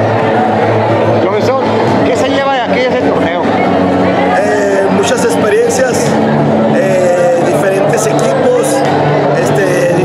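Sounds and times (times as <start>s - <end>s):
steady background noise: 0.0s - 10.0s
man speaking: 4.4s - 8.8s, 9.4s - 10.0s.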